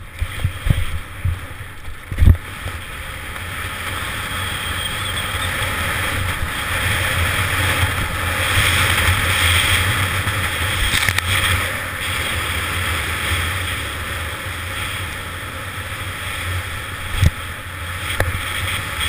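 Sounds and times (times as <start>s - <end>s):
wind buffeting microphone: 0.0s - 19.0s.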